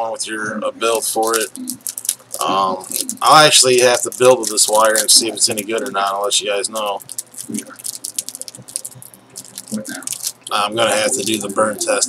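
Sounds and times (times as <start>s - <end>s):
hands handling packaging: 1.0s - 12.0s.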